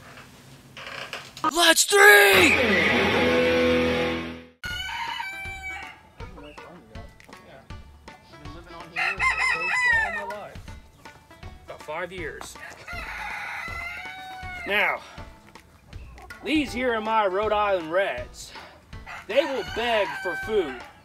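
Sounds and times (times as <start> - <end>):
chickens calling: 8.9 - 11.3, 12.6 - 17.3, 19.0 - 21.0.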